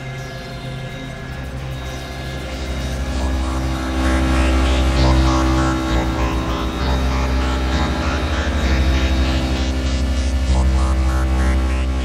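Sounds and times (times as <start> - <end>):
electronic synthesizer drone: 0.0 - 12.0
rapid bass flutter: 1.1 - 12.0.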